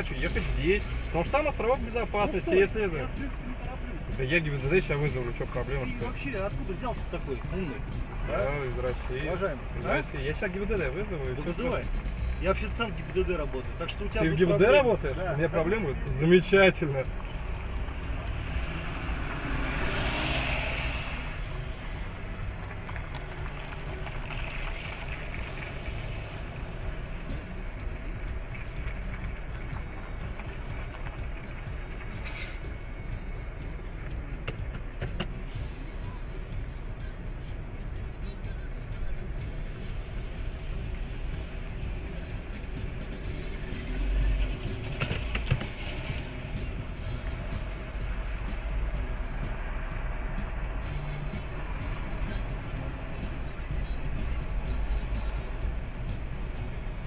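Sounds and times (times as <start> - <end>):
music playing: 0.0 - 57.0
vehicle road noise and engine: 0.0 - 57.0.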